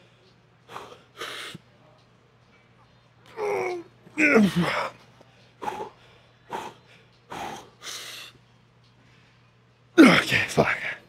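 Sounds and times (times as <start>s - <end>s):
man breathing hard: 0.0s - 1.6s.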